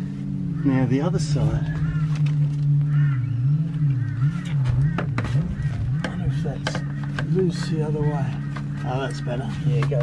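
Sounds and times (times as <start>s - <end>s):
low wobbling hum: 0.0s - 10.0s.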